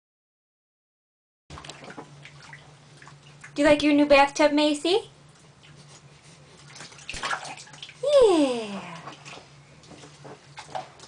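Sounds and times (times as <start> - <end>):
bath water splashing in a tub: 1.5 - 4.1, 5.3 - 11.0.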